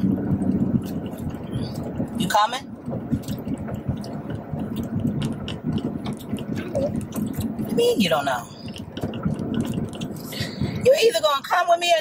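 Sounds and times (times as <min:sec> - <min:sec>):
car cabin road and engine drone: 0:00.0 - 0:12.0.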